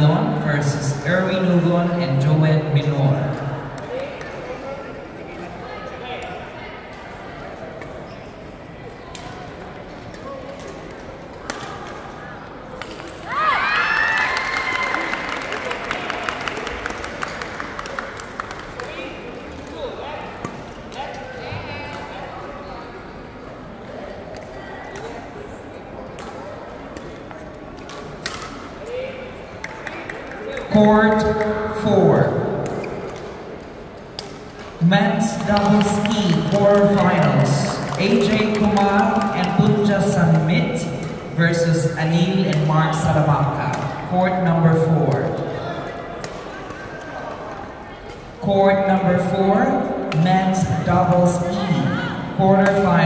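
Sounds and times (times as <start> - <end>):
murmur of voices: 0.0 - 53.0.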